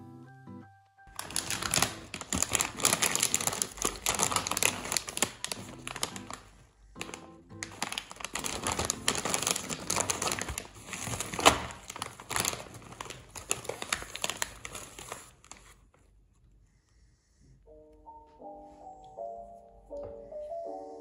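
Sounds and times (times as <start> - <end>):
plastic chip bag crinkling: 1.1 - 15.8.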